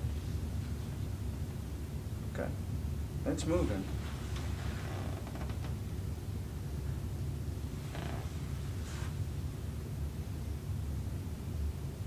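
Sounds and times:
low room rumble: 0.0s - 12.0s.

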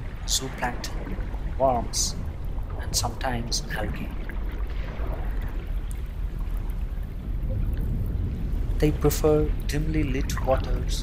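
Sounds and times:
low rushing water with rumble: 0.0s - 11.0s.

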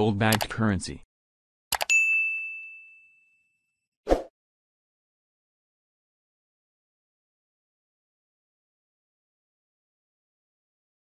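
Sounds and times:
mouse click sound effects: 0.3s - 0.5s, 1.7s - 1.9s.

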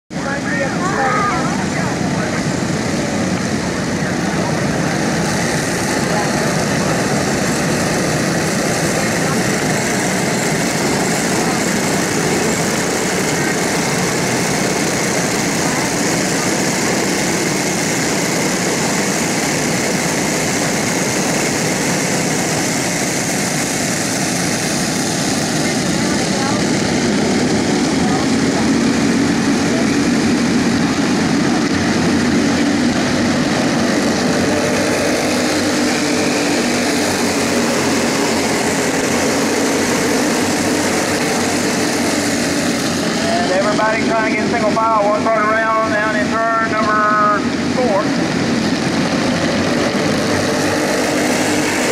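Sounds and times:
go-kart engines droning: 0.1s - 51.9s.

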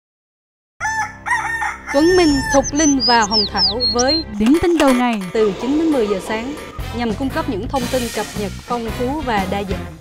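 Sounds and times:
rooster crowing: 0.8s - 2.9s.

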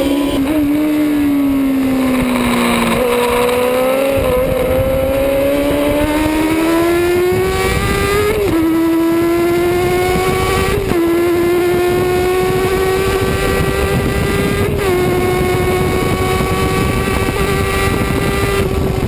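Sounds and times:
motorcycle engine accelerating: 0.0s - 19.0s
wind rushing over microphone: 0.0s - 19.0s.

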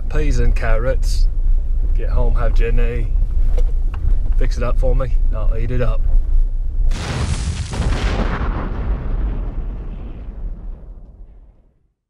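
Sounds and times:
cinematic boom: 6.9s - 11.9s.

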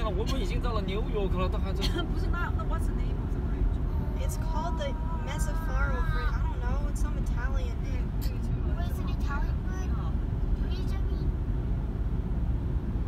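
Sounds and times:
road and engine rumble in car: 0.0s - 13.0s.

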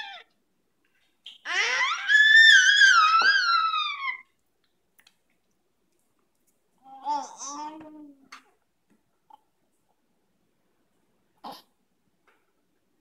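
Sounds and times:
baby squealing: 0.0s - 0.3s, 1.4s - 4.3s.

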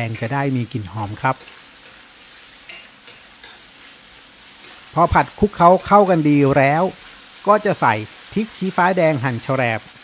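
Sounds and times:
stir-fry sizzling in a wok: 0.0s - 10.0s
wooden spatula scraping wok: 0.8s - 7.4s.

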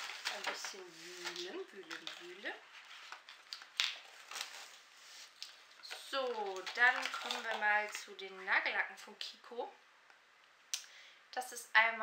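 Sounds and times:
shopping bag rustling: 0.0s - 8.2s.

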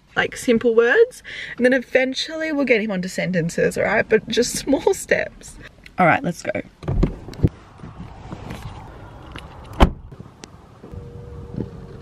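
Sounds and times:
shuffling on asphalt: 7.2s - 12.0s
car door shutting: 9.4s - 10.2s
faint steady tone: 10.8s - 12.0s.

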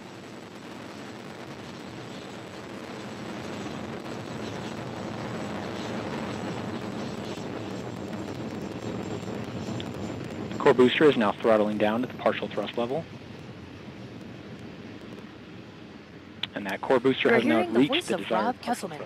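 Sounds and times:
rocket engine rumble: 0.0s - 19.0s.

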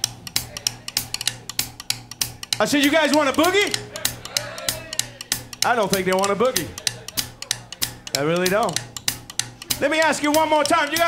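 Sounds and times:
band playing a vamp: 0.0s - 11.0s
hi-hat ticking in shuffle pattern: 0.0s - 11.0s.

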